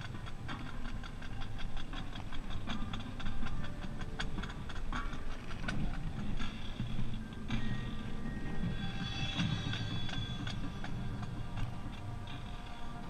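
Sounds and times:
faint regular ticking: 0:00.0 - 0:13.0
wind rumble: 0:00.0 - 0:13.0.

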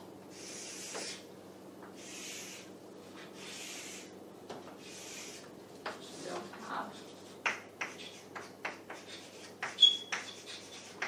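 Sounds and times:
chalk scraping on chalkboard: 0:00.4 - 0:01.2, 0:04.8 - 0:11.0
chalk tapping on board: 0:07.4 - 0:11.0.

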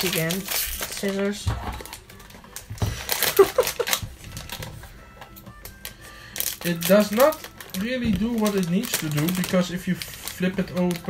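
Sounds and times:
foil packet crackling: 0:00.0 - 0:11.0.

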